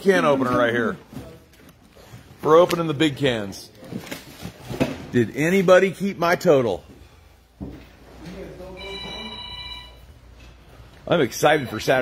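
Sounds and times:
electronic ringing tone: 0:08.8 - 0:10.1.

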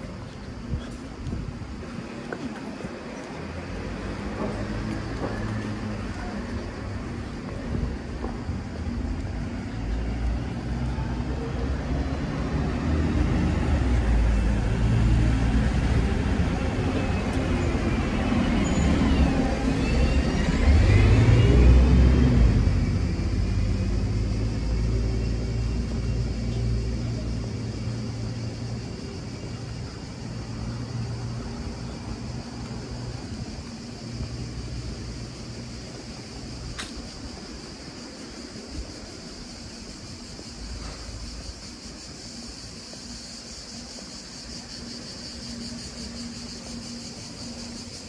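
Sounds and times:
street traffic: 0:00.0 - 0:48.0.

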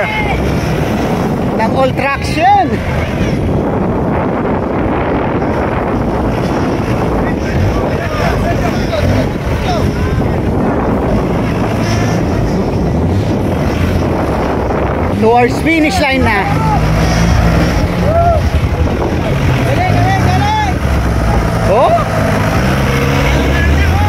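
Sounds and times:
faint crowd voices: 0:00.0 - 0:24.0
off-road buggy engine under load: 0:00.0 - 0:24.0
wind on microphone: 0:00.0 - 0:24.0.

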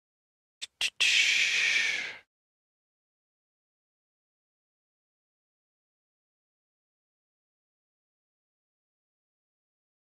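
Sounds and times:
short sniffs: 0:00.6 - 0:02.2
airy breath close to microphone: 0:00.9 - 0:02.2.

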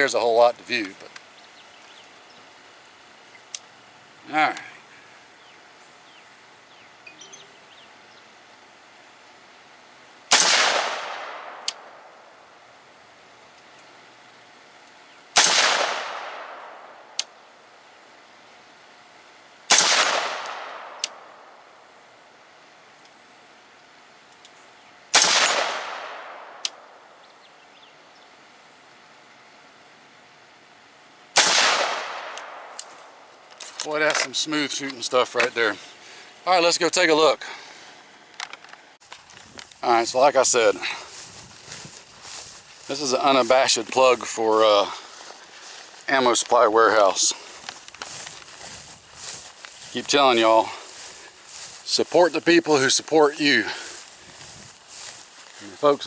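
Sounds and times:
rifle shots with echo: 0:10.3 - 0:12.1, 0:15.3 - 0:17.0, 0:19.7 - 0:21.2, 0:25.1 - 0:27.0, 0:31.3 - 0:32.8.

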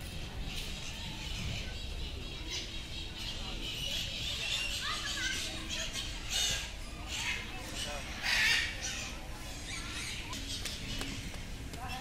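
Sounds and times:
children calling and playing: 0:00.0 - 0:12.0
people chattering: 0:00.0 - 0:12.0.

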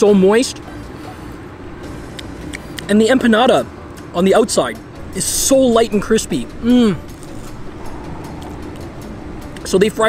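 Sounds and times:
distant road traffic rumble: 0:00.0 - 0:10.0.

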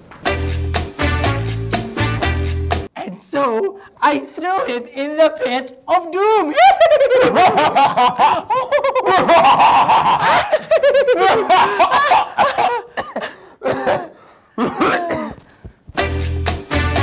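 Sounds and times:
people laughing theatrically: 0:06.5 - 0:13.4.

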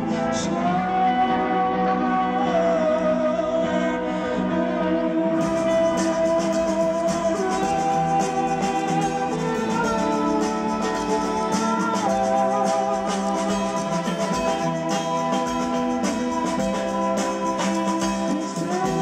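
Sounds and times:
electric guitars gliding notes: 0:00.0 - 0:19.0
live rock band playing: 0:00.0 - 0:19.0
quick percussion pattern: 0:05.4 - 0:19.0.

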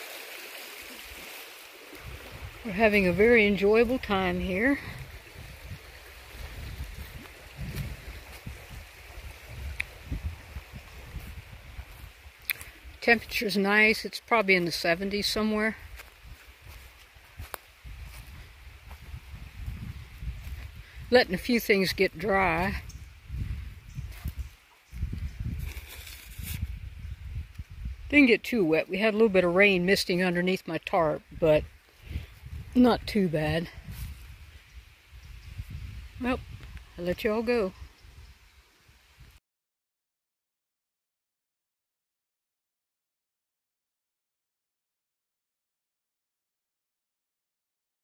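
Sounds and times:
creek rushing over rocks: 0:00.0 - 0:22.8
footsteps rustling through dry leaves: 0:04.9 - 0:12.9, 0:15.8 - 0:20.8, 0:22.9 - 0:27.2, 0:33.9 - 0:34.7.

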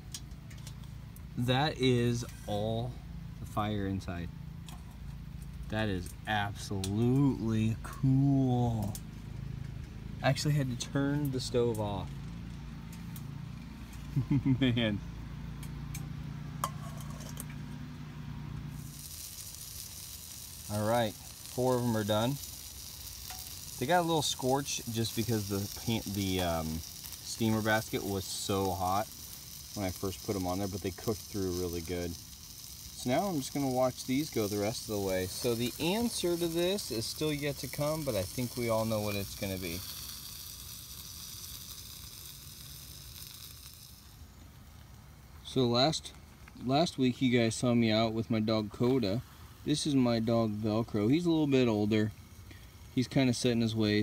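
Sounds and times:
sausages sizzling on hot metal: 0:00.0 - 0:54.0
metal clink: 0:16.6 - 0:17.6.

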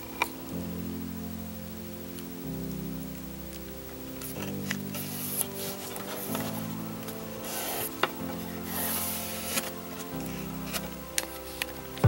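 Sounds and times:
slow held chords music: 0:00.0 - 0:12.0.

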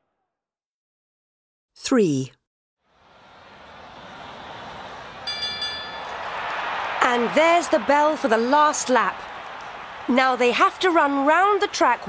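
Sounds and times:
stadium crowd noise: 0:02.8 - 0:12.0
bell rung rapidly: 0:05.2 - 0:06.4.

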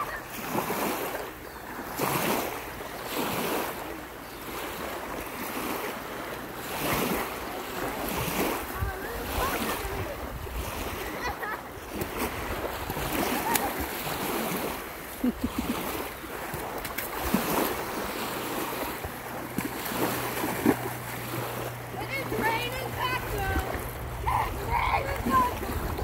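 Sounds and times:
waves lapping on pebbly shore: 0:00.0 - 0:26.0
wind rumbling on microphone: 0:07.9 - 0:13.9, 0:21.4 - 0:26.0.

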